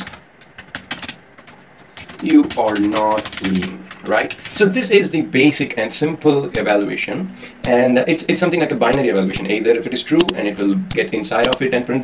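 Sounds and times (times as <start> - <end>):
typing on computer keyboard: 0.0 - 4.8, 10.9 - 11.6.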